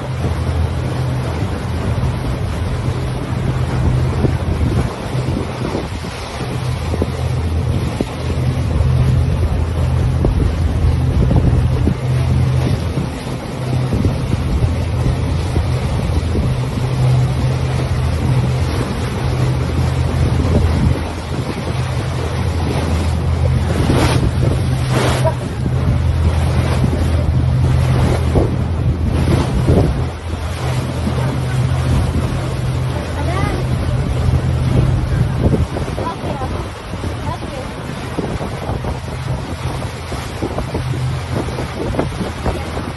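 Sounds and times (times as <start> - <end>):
boat engine humming: 0.0 - 42.9
water rushing along hull: 0.0 - 42.9
wind buffeting microphone: 0.0 - 42.9.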